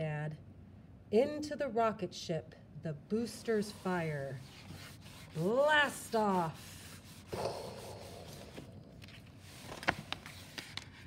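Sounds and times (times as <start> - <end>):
book page turning: 7.4 - 11.0
light ticks of page and hand: 8.5 - 11.0.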